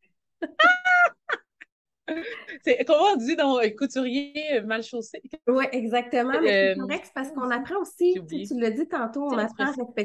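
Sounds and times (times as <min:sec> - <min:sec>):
woman squealing with laughter: 0:00.4 - 0:01.7.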